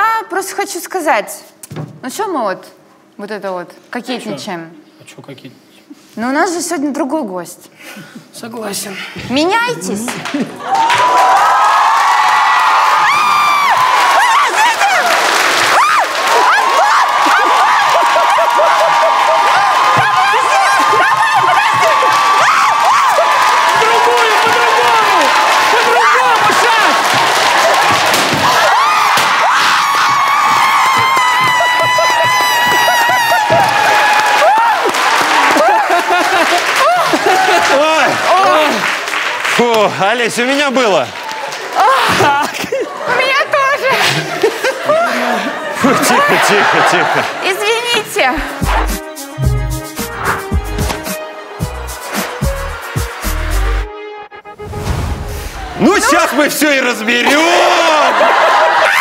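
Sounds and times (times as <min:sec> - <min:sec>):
crowd clapping: 0:10.0 - 0:43.3, 0:45.9 - 0:53.9
people whooping and shouting: 0:10.6 - 0:38.8, 0:41.2 - 0:42.5, 0:44.9 - 0:47.2, 0:55.6 - 0:56.5, 0:57.2 - 0:59.0
people cheering and shrieking: 0:10.6 - 0:39.0, 0:41.2 - 0:43.3, 0:44.4 - 0:53.8, 0:55.4 - 0:59.0
background music: 0:48.0 - 0:56.2
hand clapping: 0:51.9 - 0:53.5.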